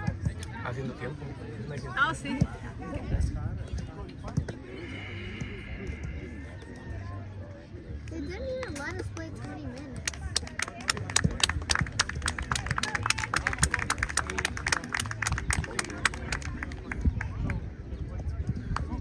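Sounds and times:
low voices: 0:02.4 - 0:08.5
people clapping: 0:08.1 - 0:17.6.

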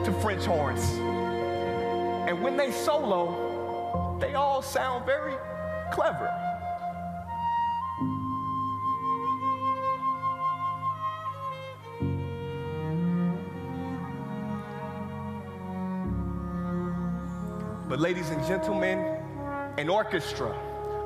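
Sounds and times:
bowed strings playing held notes: 0:00.0 - 0:21.0.

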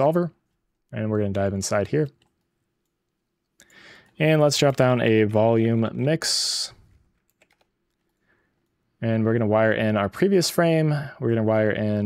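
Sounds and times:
computer mouse clicks: 0:02.0 - 0:04.8, 0:07.0 - 0:08.8.

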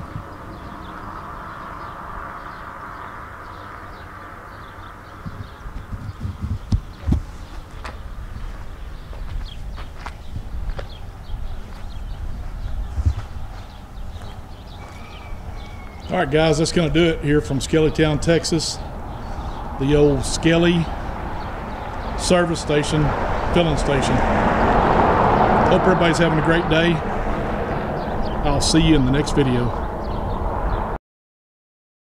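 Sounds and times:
wind rumbling on microphone: 0:00.0 - 0:31.0
footsteps: 0:05.3 - 0:16.0.

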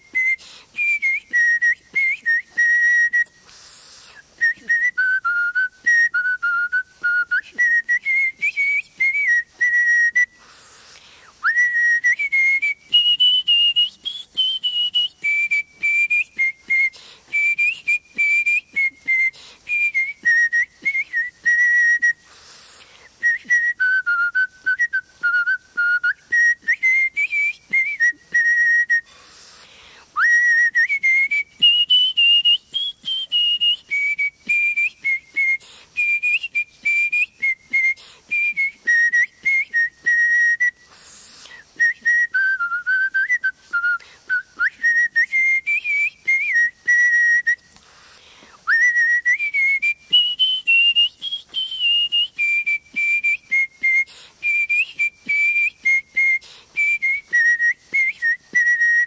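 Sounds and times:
person whistling a melody: 0:00.0 - 0:47.8, 0:48.4 - 0:59.0.

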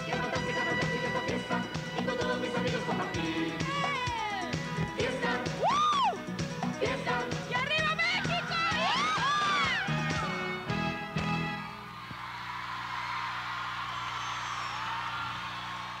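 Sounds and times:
live band playing pop music: 0:00.0 - 0:11.5
crowd cheering: 0:08.7 - 0:10.6, 0:11.5 - 0:16.0.

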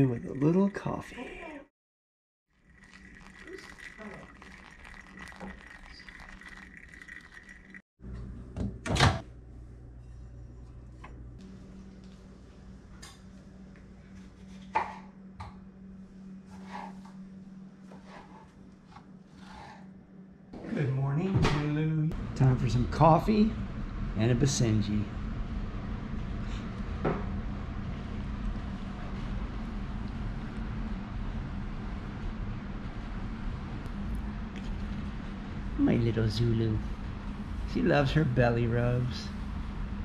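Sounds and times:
water pouring onto coffee grounds: 0:02.5 - 0:07.8
low kitchen hum: 0:02.5 - 0:40.0.

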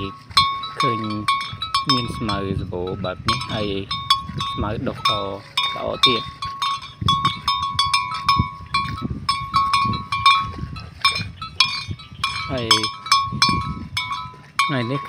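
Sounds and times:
metal neck bell clanking: 0:00.0 - 0:15.0.

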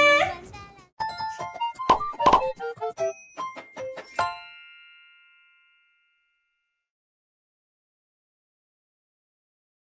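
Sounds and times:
bell-like chime: 0:01.0 - 0:06.9.

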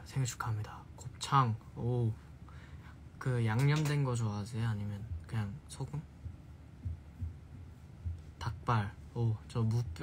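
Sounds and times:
faint low thuds: 0:03.4 - 0:10.0.

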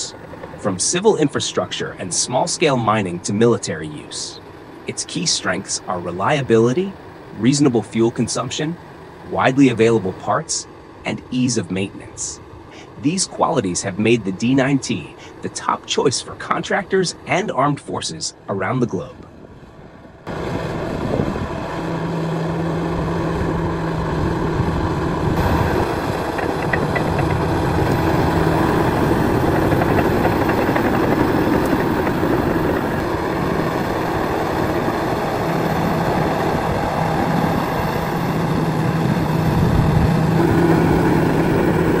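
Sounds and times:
bulldozer diesel engine running: 0:00.0 - 0:01.8, 0:20.3 - 0:42.0.

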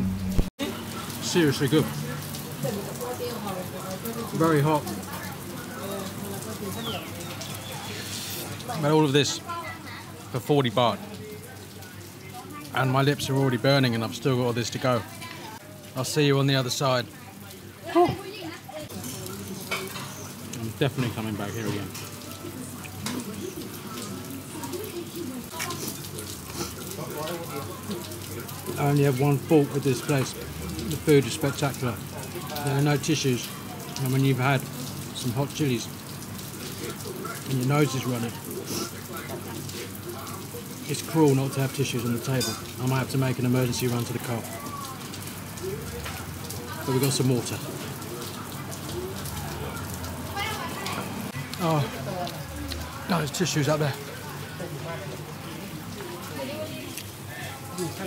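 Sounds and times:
people talking: 0:20.6 - 0:35.8, 0:36.8 - 0:58.0.

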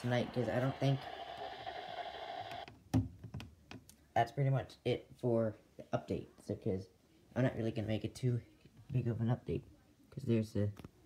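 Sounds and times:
radio speaker static: 0:00.0 - 0:02.6.

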